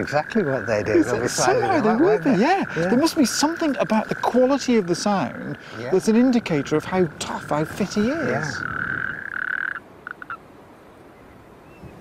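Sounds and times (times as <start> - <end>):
toad rattling call: 0.0 - 10.5
faint wind: 0.0 - 12.0.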